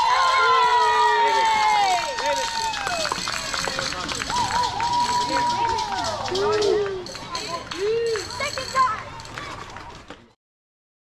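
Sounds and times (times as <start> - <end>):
players yelling cheers: 0.0 - 9.8.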